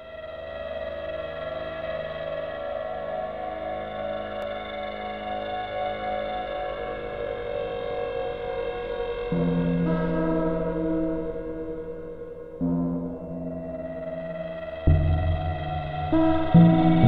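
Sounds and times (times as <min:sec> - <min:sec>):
ambient synthesizer chord: 0:00.0 - 0:17.0.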